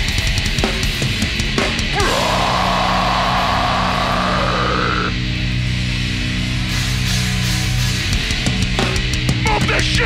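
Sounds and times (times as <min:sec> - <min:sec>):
distorted guitar and bass chord: 0:01.9 - 0:08.7.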